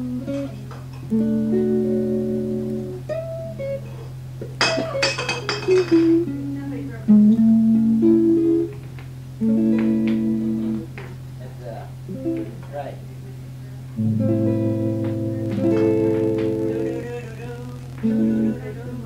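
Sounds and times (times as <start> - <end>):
guitar music: 0.0 - 19.0
steady low hum: 0.0 - 19.0.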